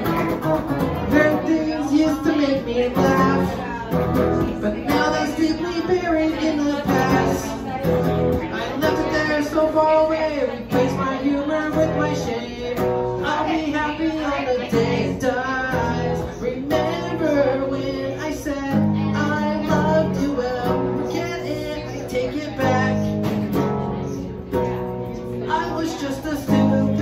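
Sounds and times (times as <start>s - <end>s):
electric guitar strummed and picked: 0.0s - 27.0s
man singing: 0.0s - 27.0s.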